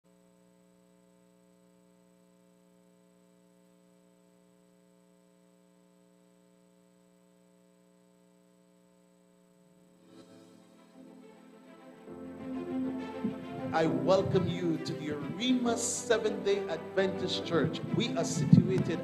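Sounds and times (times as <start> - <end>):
faint electrical hum: 0.1 - 19.0.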